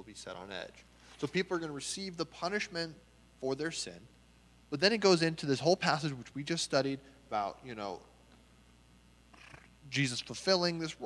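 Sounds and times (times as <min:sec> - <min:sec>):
man speaking: 0:00.0 - 0:04.1, 0:04.7 - 0:08.2, 0:09.8 - 0:11.0.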